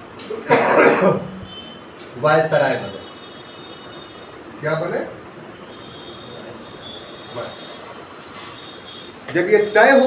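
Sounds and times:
room noise: 0.0 - 10.0.

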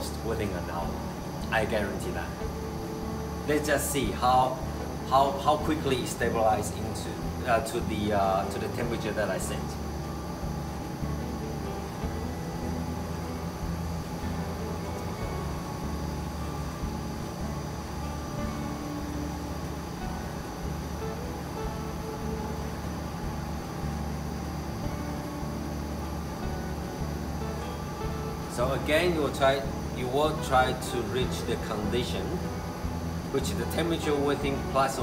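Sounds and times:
coffee roaster fan humming: 0.0 - 35.0.

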